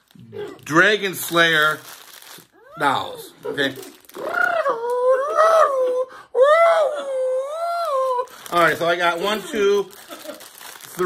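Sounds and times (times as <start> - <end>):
high-pitched wordless calls: 4.1 - 5.7.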